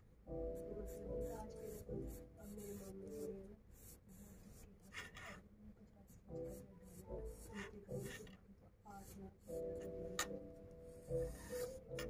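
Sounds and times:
pencil scratching on paper: 0.4 - 12.0.

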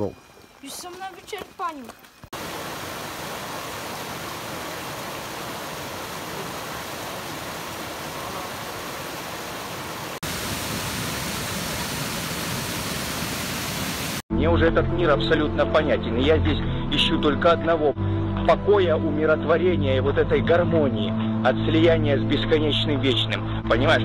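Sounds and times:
stream rushing over rocks: 0.3 - 14.2
waterfall rushing: 2.4 - 14.2.

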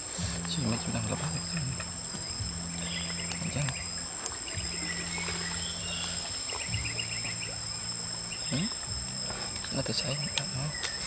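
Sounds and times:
insects droning: 0.0 - 11.0
low hum: 0.0 - 11.0
rapid insect chirping: 0.0 - 11.0.

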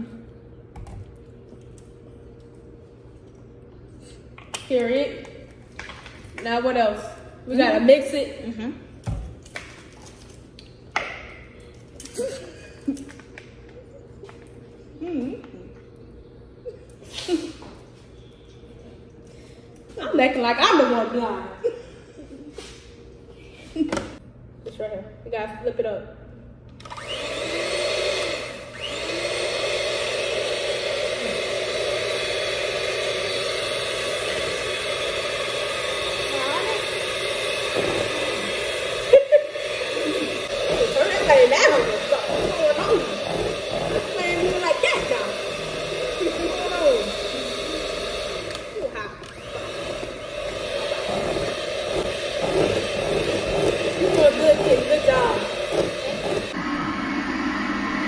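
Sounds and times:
electric mixer running: 26.8 - 58.0.

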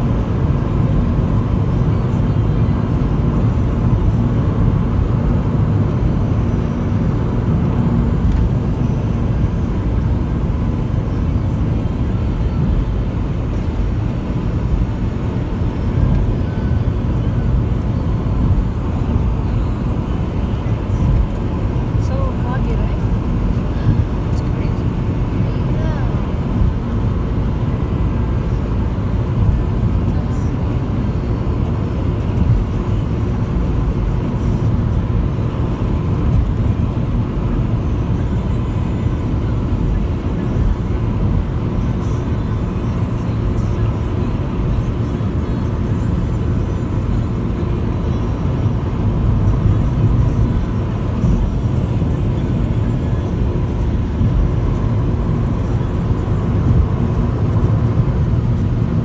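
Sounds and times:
car driving at highway speed: 0.0 - 59.0.

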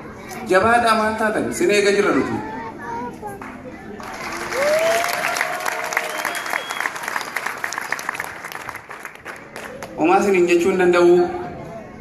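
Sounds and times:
crowd applauding: 3.9 - 10.0.

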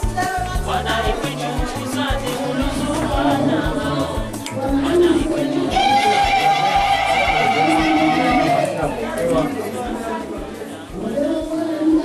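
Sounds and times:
people talking over one another: 0.0 - 12.0
long held vocal note: 5.0 - 8.8.

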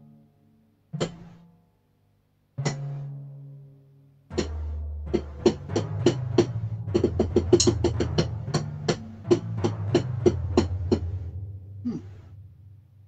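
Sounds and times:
electronic drum hits: 4.3 - 13.0
synth bass drone: 4.4 - 13.0.

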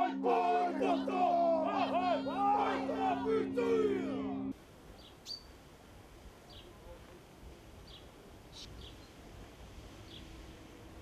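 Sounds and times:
men chanting: 0.0 - 4.5
steady low hum: 0.0 - 5.0
bird chirps: 5.0 - 5.5.

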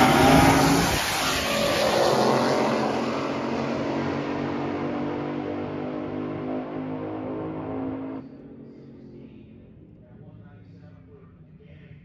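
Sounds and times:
race car engine at full throttle: 0.0 - 12.0.

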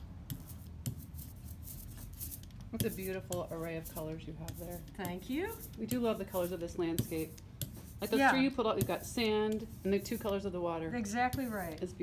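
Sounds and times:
rubber brayer rolling through ink: 0.2 - 12.0.

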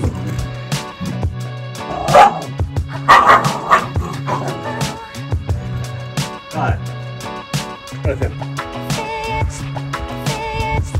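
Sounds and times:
background music with steady beat: 0.0 - 10.9
puppy barking: 2.0 - 4.8.

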